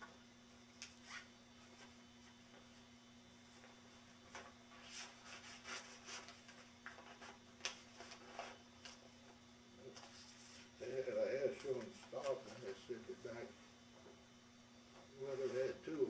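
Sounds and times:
steady low hum: 0:00.0 - 0:16.0
rustling and rubbing of handling: 0:00.5 - 0:16.0.

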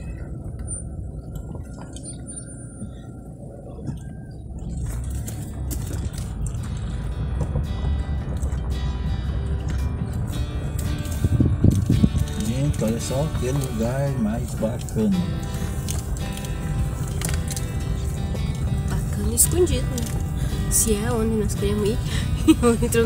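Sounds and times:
car driving on dirt road: 0:00.0 - 0:23.0
background music: 0:04.7 - 0:23.0.

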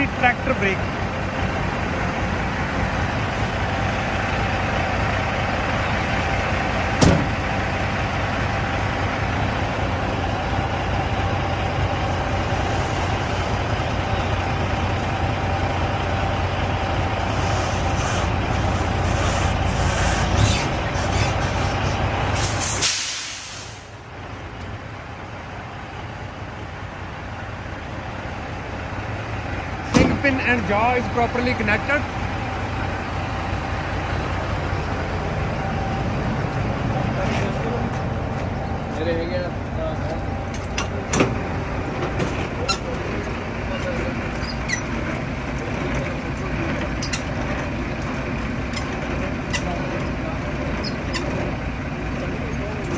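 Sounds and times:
diesel truck engine running: 0:00.0 - 0:52.9
air hiss: 0:22.4 - 0:24.0.

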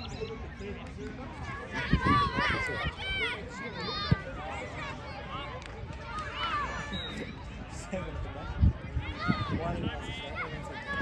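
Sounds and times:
outdoor background noise: 0:00.0 - 0:11.0
children shouting: 0:01.5 - 0:07.0, 0:10.2 - 0:11.0.

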